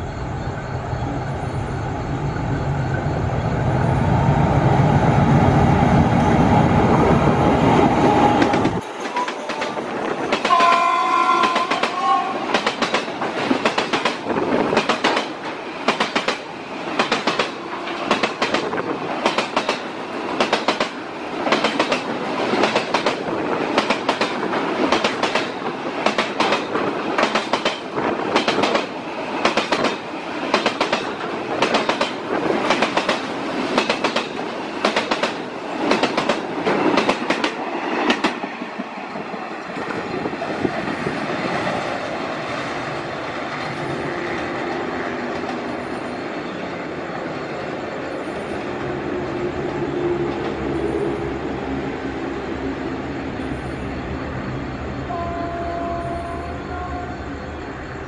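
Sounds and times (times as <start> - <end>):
train wheels clicking over rail joints: 8.2 - 41.8
locomotive horn: 9.0 - 12.6, 55.1 - 57.3.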